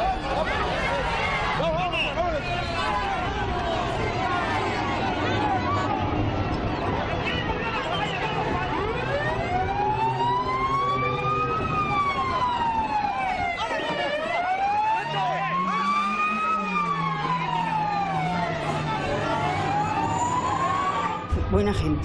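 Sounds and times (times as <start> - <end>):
police siren wailing: 0.0 - 22.0.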